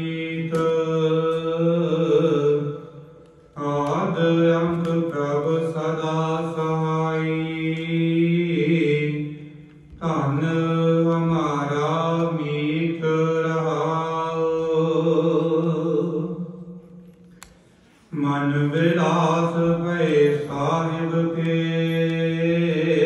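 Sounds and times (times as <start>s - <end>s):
voices chanting a hymn: 0.0s - 17.1s, 18.1s - 23.0s.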